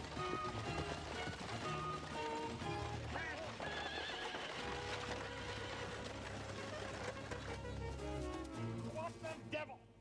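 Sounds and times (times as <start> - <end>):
horse neighing: 3.6 - 6.0
low soundtrack music: 5.9 - 9.8.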